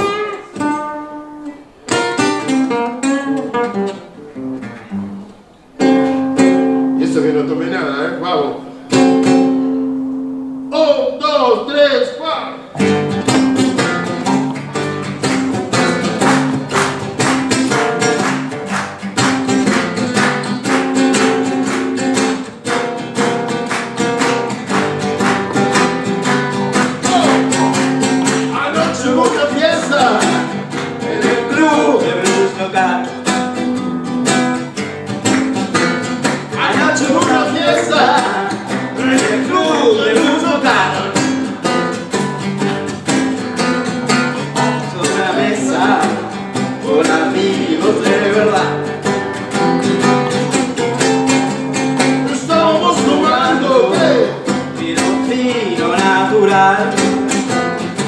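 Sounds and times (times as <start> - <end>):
acoustic guitars playing blues: 0.0 - 58.0
person singing: 27.0 - 33.2, 36.5 - 41.6, 44.4 - 48.9, 52.2 - 57.1.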